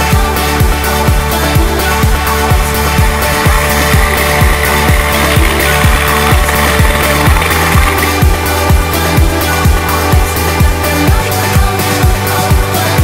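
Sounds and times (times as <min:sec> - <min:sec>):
held bass line: 0:00.0 - 0:13.0
electronic dance music: 0:02.6 - 0:10.3.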